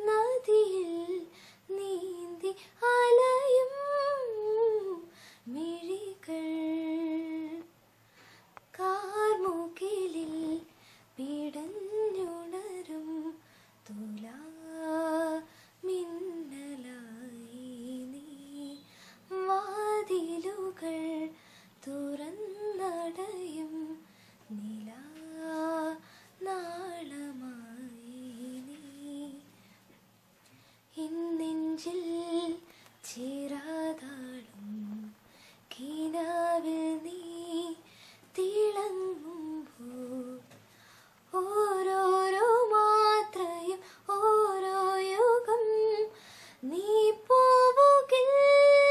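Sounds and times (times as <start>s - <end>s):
woman singing unaccompanied: 0.0s - 7.7s, 8.7s - 29.5s, 30.9s - 40.6s, 41.3s - 48.9s.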